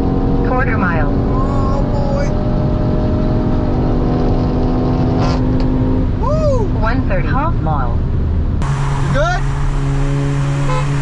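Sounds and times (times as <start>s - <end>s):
car engine and tyre noise: 0.0s - 11.0s
rising and falling vocal sound: 1.3s - 2.4s.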